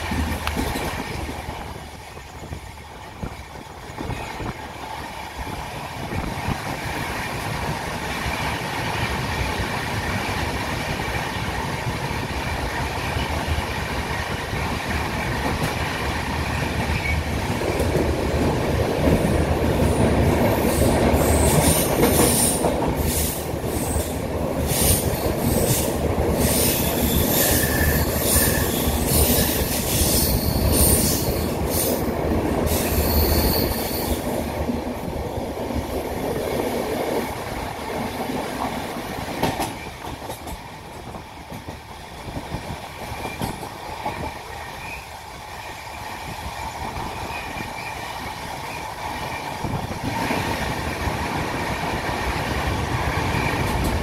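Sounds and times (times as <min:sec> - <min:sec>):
train wheels rumbling on track: 0:00.0 - 0:54.0
high metallic wheel squeal: 0:25.6 - 0:31.9, 0:32.7 - 0:34.3.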